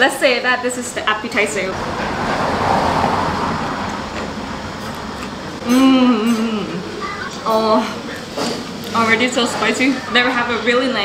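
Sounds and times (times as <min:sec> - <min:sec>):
steady rushing noise: 0:01.6 - 0:05.6.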